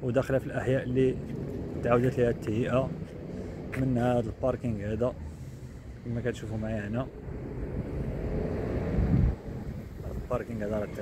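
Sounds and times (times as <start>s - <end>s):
street traffic rumble: 0.0s - 11.0s
wind buffeting microphone: 0.0s - 11.0s.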